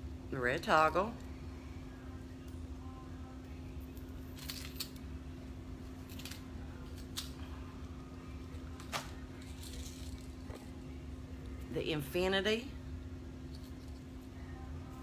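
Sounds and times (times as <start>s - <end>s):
steady low hum: 0.0s - 15.0s
jewelry clicks and bag rustles: 3.9s - 5.0s, 5.8s - 7.4s, 8.7s - 10.7s.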